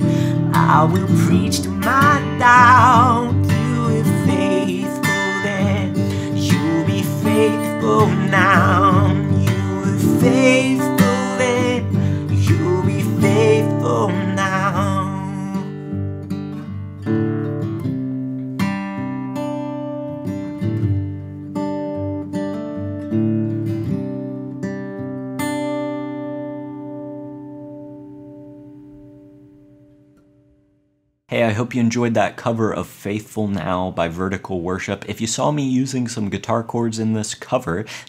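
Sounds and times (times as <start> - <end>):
man singing wavering notes: 0.0 - 15.7
fingerpicked acoustic guitar: 0.0 - 30.8.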